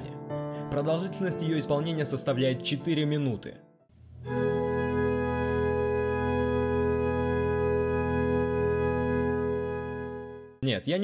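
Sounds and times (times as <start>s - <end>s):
organ chord: 4.0s - 10.6s.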